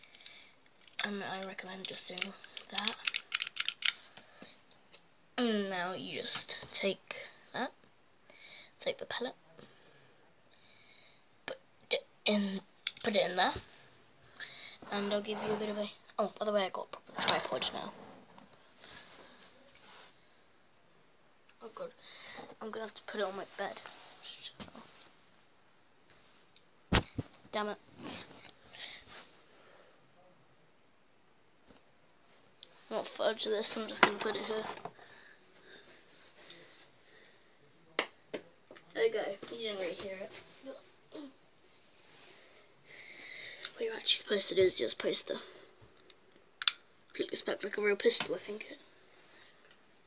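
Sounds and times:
plastic toy gun clicks and rattles: 0:01.8 - 0:04.0, 0:46.6 - 0:46.8.

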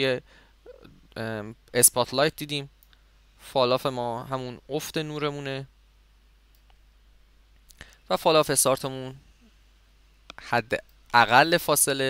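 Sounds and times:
steady low hum: 0:00.0 - 0:12.0
soft faint clicks: 0:02.8 - 0:03.1, 0:06.5 - 0:06.9, 0:10.2 - 0:11.2.

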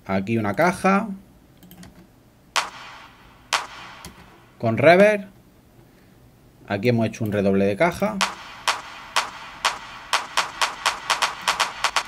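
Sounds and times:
snare drum roll with reverb: 0:02.6 - 0:04.6, 0:08.2 - 0:12.0.

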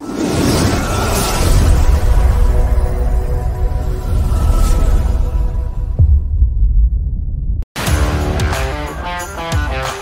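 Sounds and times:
deep bass drop: 0:05.7 - 0:08.7.

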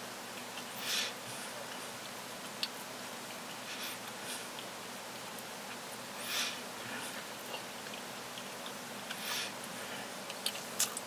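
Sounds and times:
room hiss: 0:00.0 - 0:11.0
soft chewing: 0:00.3 - 0:11.0.

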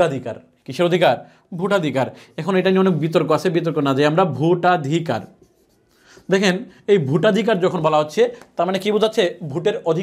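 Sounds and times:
man speaking: 0:00.0 - 0:05.4, 0:06.2 - 0:10.0.

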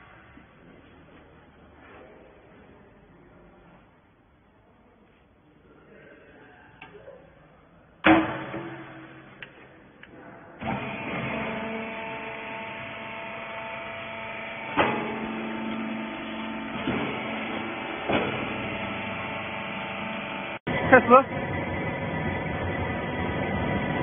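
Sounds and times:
sharp machine clunks: 0:08.0 - 0:09.4, 0:14.6 - 0:19.3
baler motor humming: 0:10.6 - 0:24.0.

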